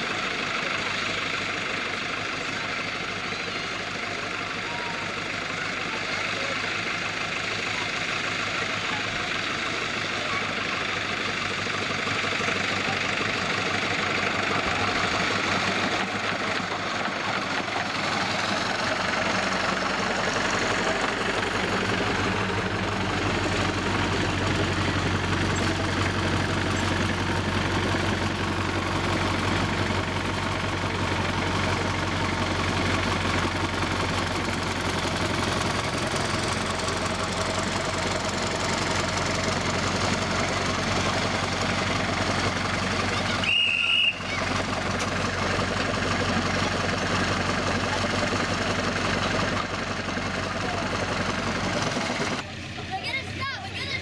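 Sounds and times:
miniature locomotive engine humming: 0.0s - 54.0s.

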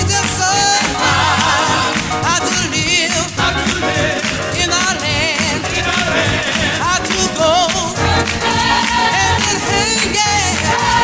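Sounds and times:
band playing: 0.0s - 11.0s
gospel choir singing: 0.0s - 11.0s
tambourine shaking: 0.0s - 11.0s.

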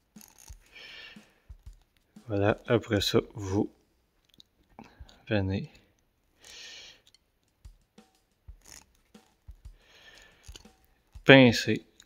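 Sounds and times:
crimping pliers clicking: 0.1s - 0.7s, 8.5s - 11.3s.

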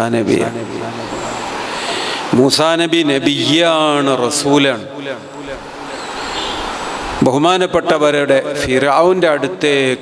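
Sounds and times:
noisy rumble: 0.0s - 9.8s.

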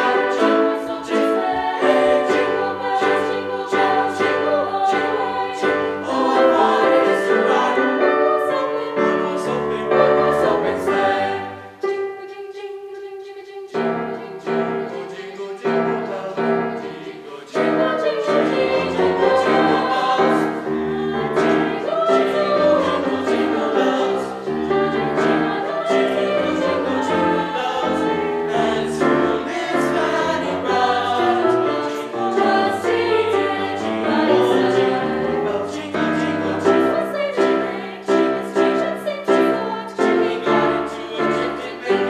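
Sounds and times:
mixed choir singing: 0.0s - 42.0s.

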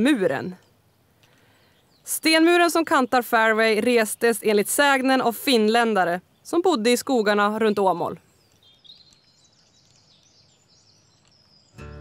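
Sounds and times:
songbirds chirping: 0.0s - 12.0s
background music: 11.8s - 12.0s.

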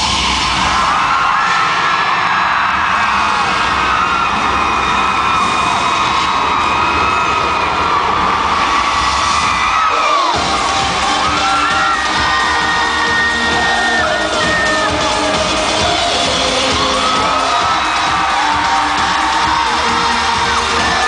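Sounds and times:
crowd screaming and cheering: 0.0s - 21.0s
loud live pop music: 0.0s - 21.0s.

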